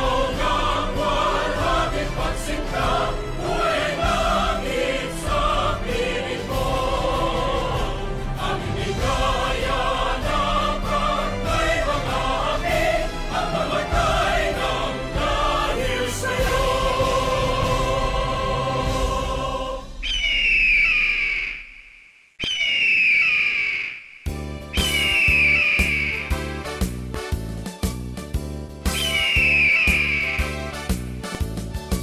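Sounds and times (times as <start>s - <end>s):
choral music with accompaniment: 0.0s - 20.1s.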